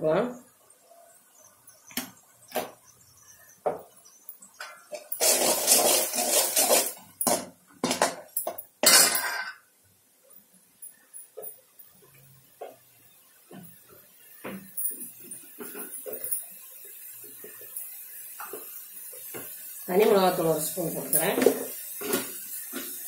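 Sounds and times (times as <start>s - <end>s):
ladle scraping a metal pan: 4.9s - 7.0s.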